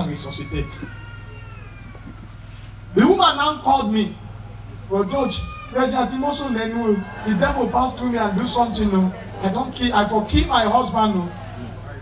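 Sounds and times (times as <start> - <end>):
sound system hum: 0.0 - 12.0.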